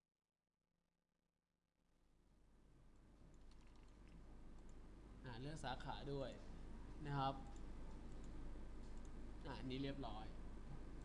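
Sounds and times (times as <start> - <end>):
low electrical hum: 1.9 - 11.0
faint mouse clicks: 3.0 - 4.8, 7.4 - 9.2.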